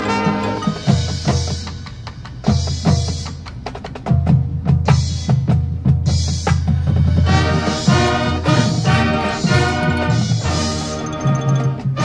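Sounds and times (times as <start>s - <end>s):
marching band sustained chords: 0.0s - 3.4s, 5.2s - 12.0s
drum and mallet strikes: 0.0s - 12.0s.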